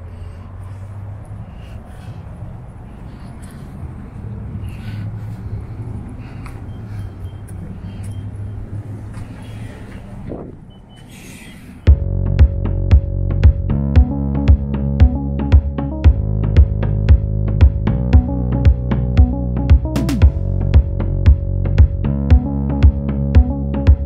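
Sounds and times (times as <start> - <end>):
steady low rumble: 0.0 - 11.0, 11.8 - 24.0.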